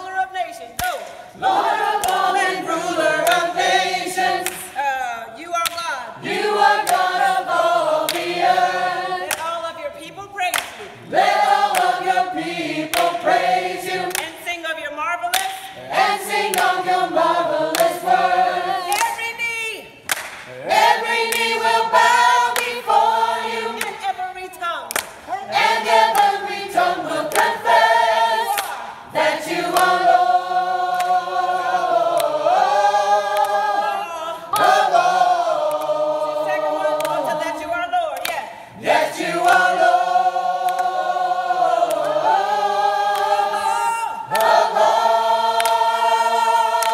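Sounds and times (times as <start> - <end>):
gospel choir singing in harmony: 0.0 - 46.9.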